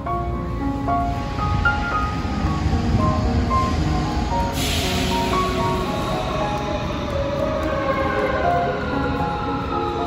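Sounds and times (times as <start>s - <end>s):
metro train rumbling: 0.0s - 10.0s.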